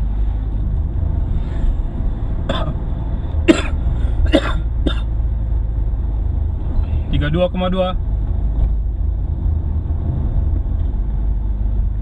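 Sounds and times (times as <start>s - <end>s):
car engine and tyre drone: 0.0s - 12.0s
person coughing: 2.5s - 2.8s, 3.5s - 5.1s.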